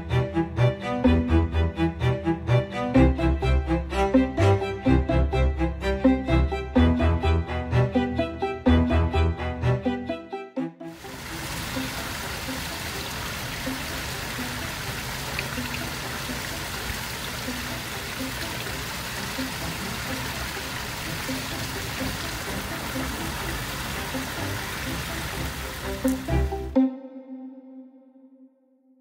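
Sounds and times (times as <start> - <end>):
waterfall spilling into pond: 11.0 - 26.7.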